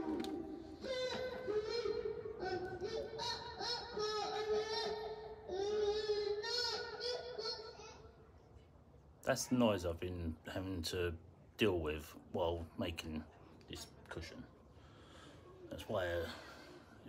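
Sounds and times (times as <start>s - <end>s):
child singing through karaoke machine: 0.0s - 7.8s.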